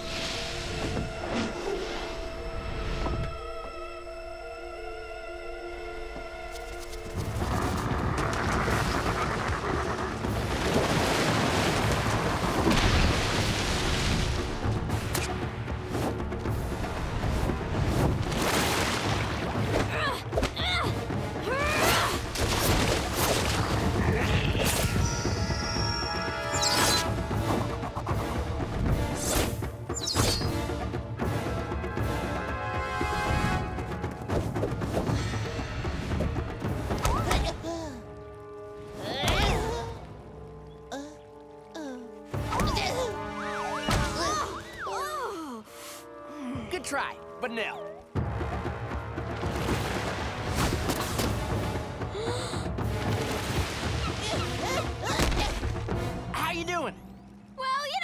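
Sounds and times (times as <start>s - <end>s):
orchestral fight score: 14.0s - 37.8s.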